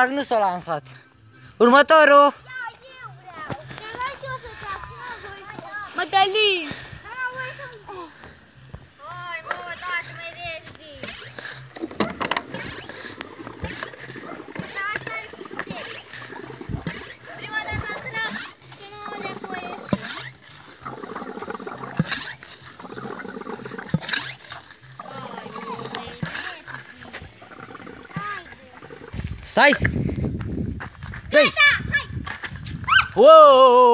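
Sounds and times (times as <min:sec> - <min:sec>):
children talking: 0:02.4 - 0:08.4, 0:09.0 - 0:29.3, 0:31.3 - 0:33.2
splashy pumping noise: 0:10.9 - 0:29.2
pump knocking: 0:11.0 - 0:17.2, 0:19.2 - 0:24.4.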